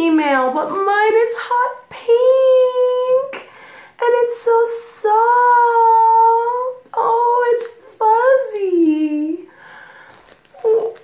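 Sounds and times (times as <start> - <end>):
woman humming high-pitched coo: 10.6 - 11.0.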